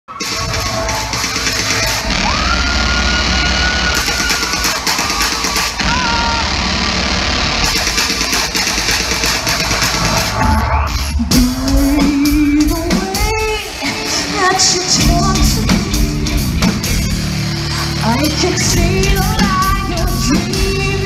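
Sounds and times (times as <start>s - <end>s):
rock band playing live: 0.1s - 21.0s.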